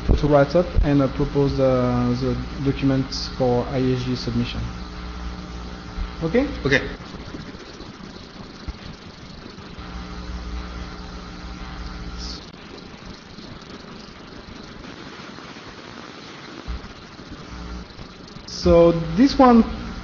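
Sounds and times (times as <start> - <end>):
pitched drone with low rumble: 0.0 - 14.8
ventilation hum: 0.0 - 20.0.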